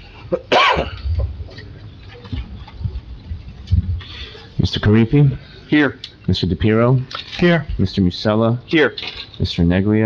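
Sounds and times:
person coughing: 0:00.3 - 0:01.1.

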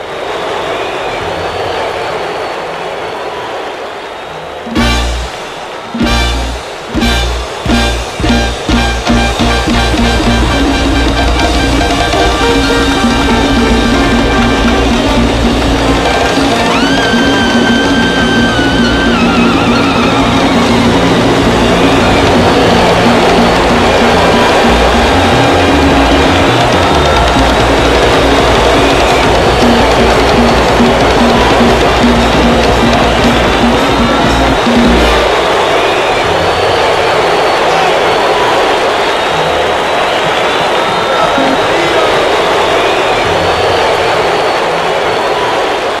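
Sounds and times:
live salsa band playing: 0:04.7 - 0:35.6
electric bass notes: 0:06.0 - 0:35.3.

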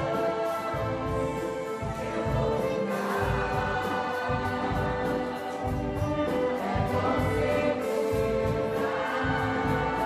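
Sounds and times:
choir singing: 0:00.0 - 0:10.0
strings and winds orchestra: 0:00.0 - 0:10.0.

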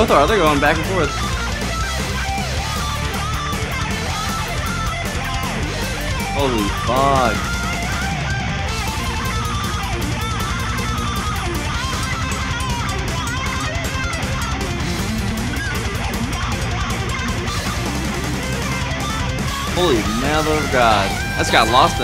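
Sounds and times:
thrash metal band playing: 0:00.0 - 0:22.0
electric guitar solo: 0:00.7 - 0:22.0.

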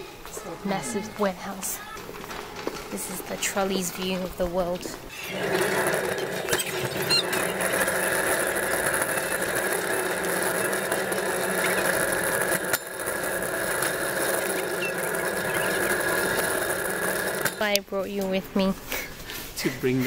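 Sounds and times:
metal trolley rolling on concrete: 0:00.0 - 0:18.4
trolley knock: 0:01.5 - 0:17.8.

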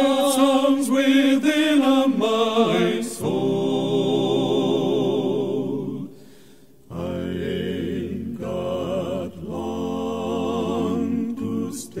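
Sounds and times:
male vocal quartet singing harmony: 0:00.0 - 0:12.0.

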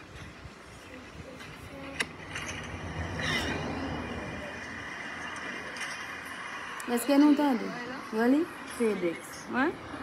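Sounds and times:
car passing on road: 0:02.1 - 0:10.0.

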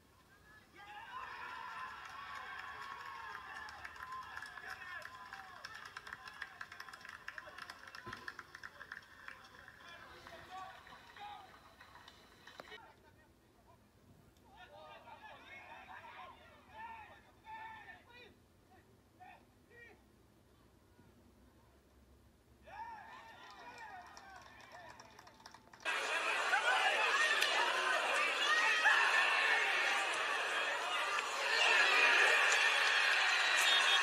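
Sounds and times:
crowd shouting and cheering: 0:25.8 - 0:34.0
voices talking: 0:25.9 - 0:34.0.

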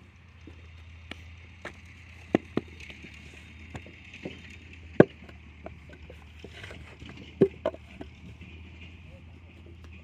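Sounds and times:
brick mould knocking on ground: 0:02.3 - 0:02.8, 0:03.7 - 0:08.2.

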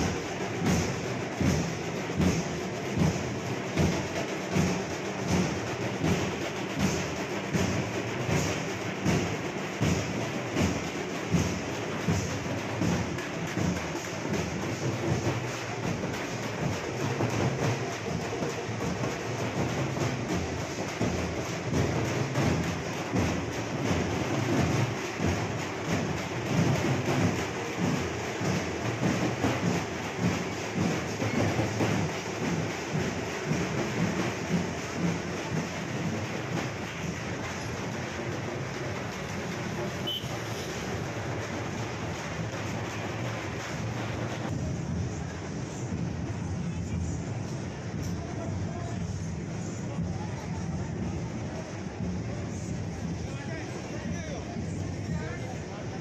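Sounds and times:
frame drums beaten with sticks: 0:00.0 - 0:47.2.

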